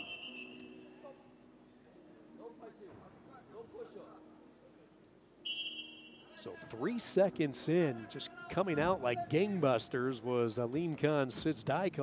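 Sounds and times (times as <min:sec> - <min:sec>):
referee's whistle blast: 0:00.0 - 0:00.8, 0:05.5 - 0:06.4.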